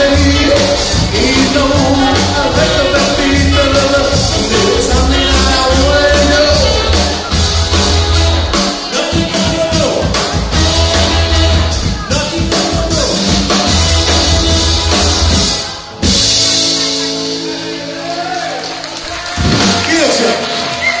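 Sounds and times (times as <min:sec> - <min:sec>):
rockabilly band playing: 0:00.0 - 0:21.0.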